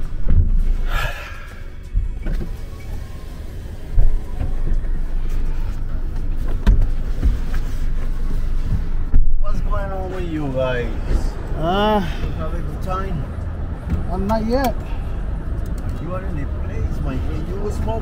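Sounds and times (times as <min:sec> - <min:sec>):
car engine and cabin rumble: 0:00.0 - 0:18.0
faint car radio music: 0:00.9 - 0:11.0.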